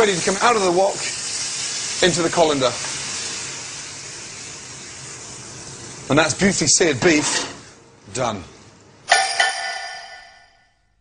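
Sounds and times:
beef and oil sizzling: 0.0 - 7.0.

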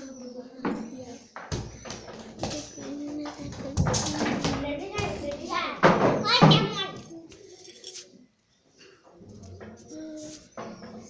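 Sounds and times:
people talking: 0.0 - 1.4, 2.1 - 7.8.

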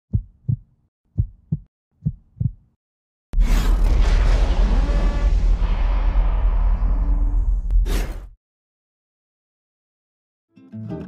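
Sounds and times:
heartbeat thumps: 0.1 - 2.7
deep rumbling boom: 3.4 - 7.9.

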